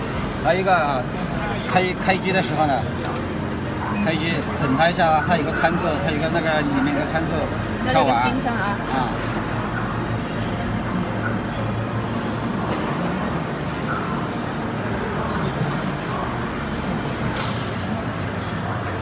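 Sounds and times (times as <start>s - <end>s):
faint voices: 0.0s - 19.0s
compressed air hiss: 17.3s - 18.4s.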